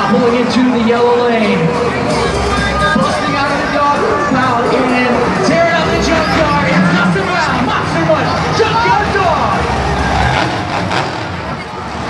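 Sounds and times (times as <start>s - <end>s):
crowd noise: 0.0s - 12.0s
monster truck engines running: 0.0s - 12.0s
voices: 0.0s - 12.0s.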